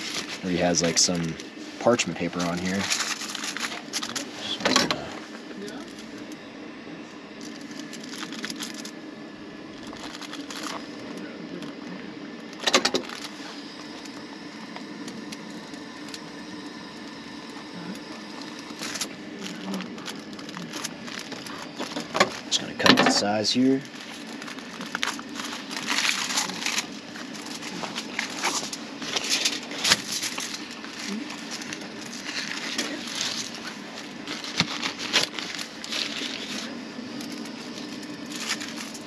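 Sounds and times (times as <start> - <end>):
steady low hum: 0.0 - 39.0
paper rustling: 2.0 - 4.3, 23.8 - 39.0.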